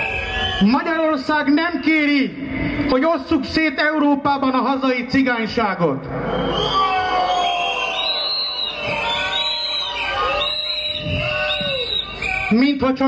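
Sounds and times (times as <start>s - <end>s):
crowd whistling: 0.0s - 1.2s, 6.1s - 12.8s
crowd booing: 6.1s - 12.6s.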